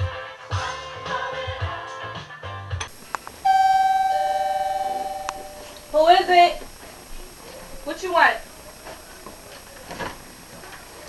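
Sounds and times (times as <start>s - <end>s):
two-tone doorbell chime: 3.4s - 5.8s.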